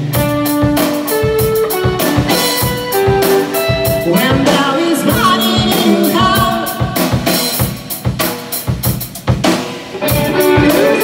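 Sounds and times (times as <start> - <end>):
electric guitars: 0.0 - 8.7, 9.4 - 11.0
drum kit beat: 0.0 - 11.0
electric bass: 0.0 - 11.0.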